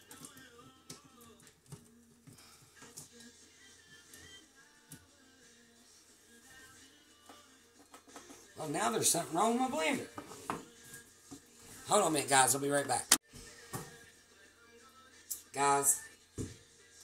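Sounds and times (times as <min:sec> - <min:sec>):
faint background music: 0:00.0 - 0:17.0.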